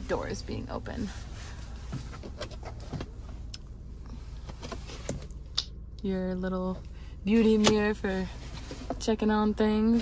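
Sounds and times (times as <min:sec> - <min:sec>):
low car cabin hum: 0:00.0 - 0:10.0.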